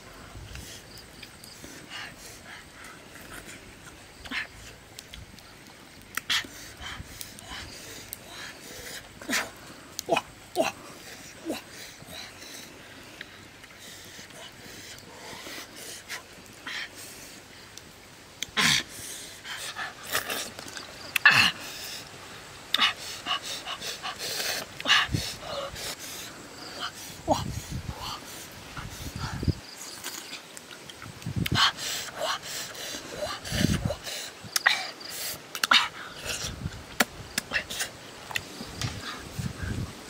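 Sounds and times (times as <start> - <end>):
faint outdoor background: 0.0 - 40.0.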